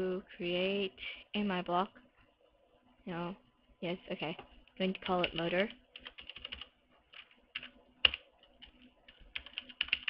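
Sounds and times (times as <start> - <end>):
computer keyboard typing: 4.8 - 10.0.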